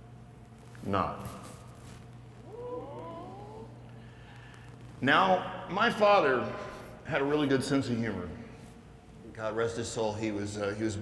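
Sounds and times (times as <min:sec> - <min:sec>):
audience saying ooh: 0:02.4 - 0:03.8.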